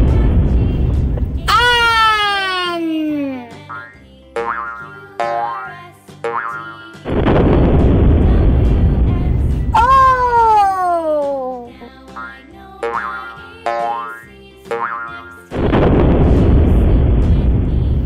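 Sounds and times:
cartoon music: 0:01.4 - 0:07.2, 0:09.7 - 0:15.6
loud burst of noise: 0:07.1 - 0:09.6, 0:15.6 - 0:18.0.

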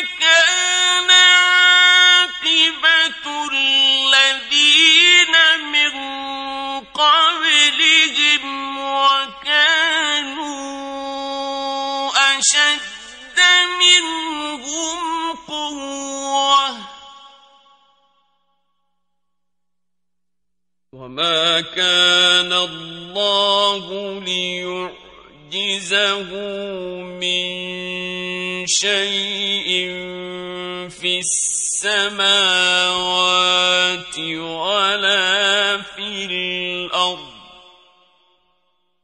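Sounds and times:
man reciting melodically: 0:00.0 - 0:17.5, 0:21.0 - 0:37.8.

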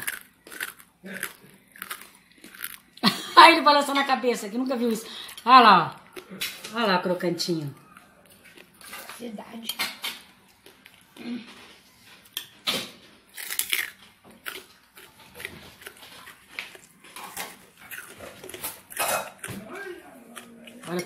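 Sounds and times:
crunching pork cracklings: 0:00.0 - 0:03.0, 0:10.0 - 0:21.0.

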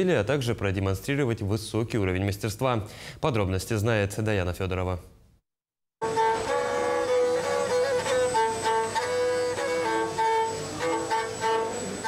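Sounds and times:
bowed fiddle sliding held notes: 0:06.0 - 0:12.0.

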